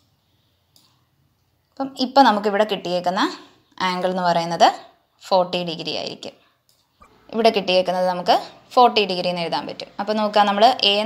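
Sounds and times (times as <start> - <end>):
computer mouse clicks: 0.7 - 1.5, 6.6 - 7.0.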